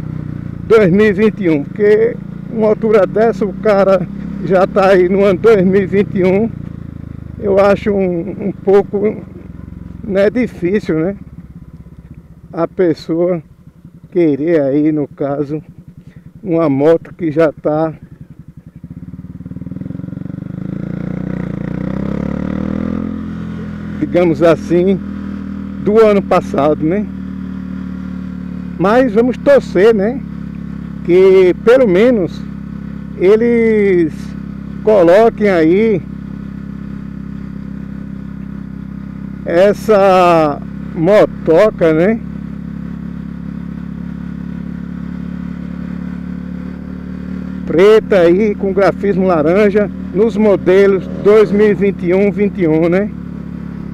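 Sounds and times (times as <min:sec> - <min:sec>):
motorcycle engine accelerating: 0:00.0 - 0:53.9.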